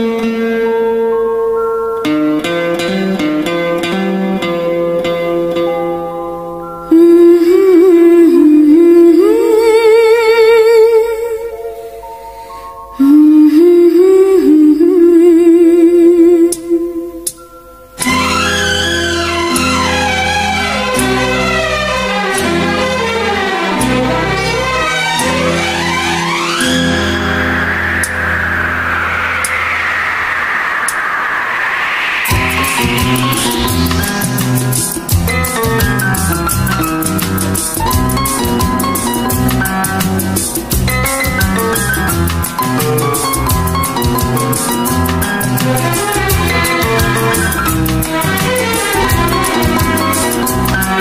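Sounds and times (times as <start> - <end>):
backing music with held chords: 0.0 - 9.8
rushing whoosh: 26.3 - 36.2
low held note: 26.5 - 34.7.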